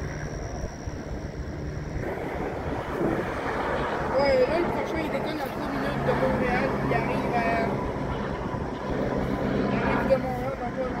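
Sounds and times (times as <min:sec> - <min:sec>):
helicopter engine and rotor drone: 0:00.0 - 0:11.0
voices talking: 0:02.4 - 0:11.0.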